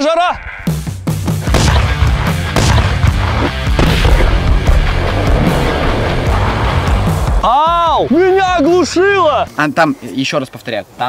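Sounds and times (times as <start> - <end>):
firecrackers banging: 1.9 - 7.5.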